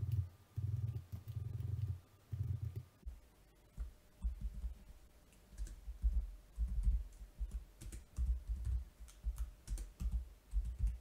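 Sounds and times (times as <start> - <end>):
computer keyboard typing: 0.0 - 2.9, 5.5 - 11.0.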